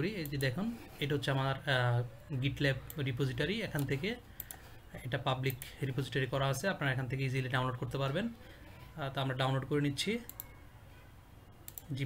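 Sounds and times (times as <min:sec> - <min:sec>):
computer mouse clicks: 0:03.7 - 0:04.7, 0:10.2 - 0:10.6, 0:11.6 - 0:12.0.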